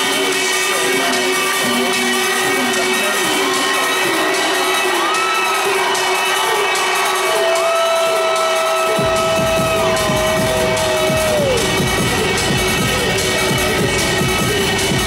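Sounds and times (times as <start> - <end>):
crowd cheering: 0.0 - 15.0
live electronic music: 0.0 - 15.0.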